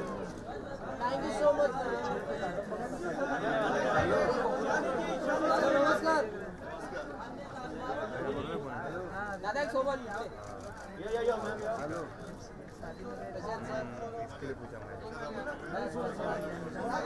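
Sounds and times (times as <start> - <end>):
people talking over one another: 0.0 - 17.0.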